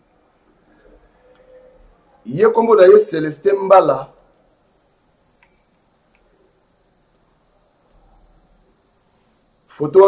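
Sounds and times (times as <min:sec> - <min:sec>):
faint high-pitched hiss: 0:00.0 - 0:10.0
voice: 0:00.8 - 0:04.2, 0:09.7 - 0:10.0.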